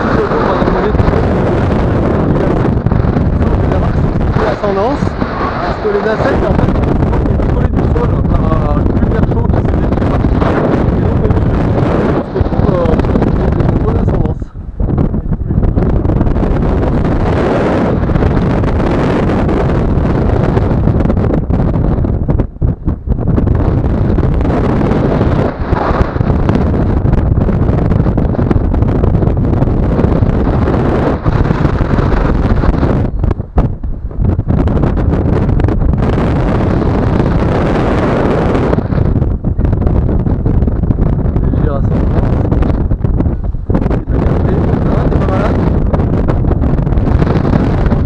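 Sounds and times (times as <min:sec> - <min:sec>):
wind noise on microphone: 0:00.0 - 0:48.0.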